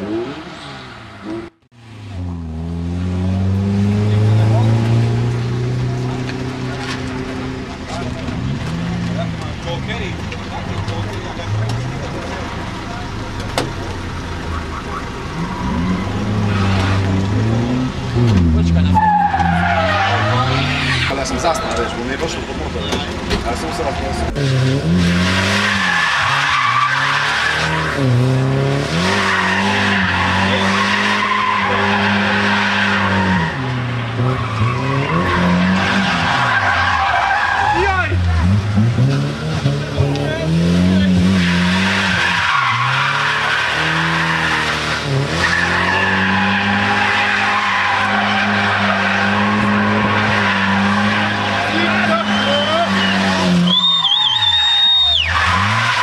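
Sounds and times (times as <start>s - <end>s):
car engine revving: 0.0s - 56.0s
tyres squealing: 14.4s - 24.4s, 25.5s - 28.0s, 28.9s - 38.9s, 39.5s - 56.0s.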